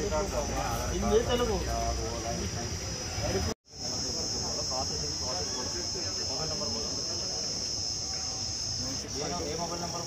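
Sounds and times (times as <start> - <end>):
crickets chirping: 0.0 - 10.0
faint voices: 0.0 - 10.0.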